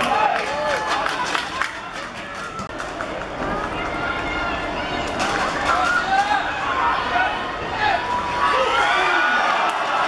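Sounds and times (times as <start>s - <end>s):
people shouting and calling out: 3.5s - 10.0s.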